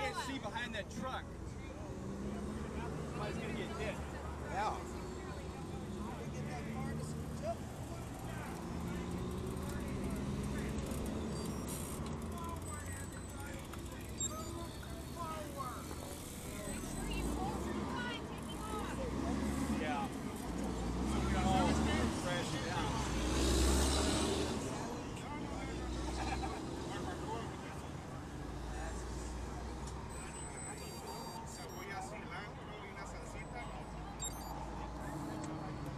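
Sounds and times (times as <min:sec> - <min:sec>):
indistinct chatter: 0:00.0 - 0:35.9
vehicles passing with low rumbles: 0:00.0 - 0:35.9
engine hum: 0:01.2 - 0:31.8.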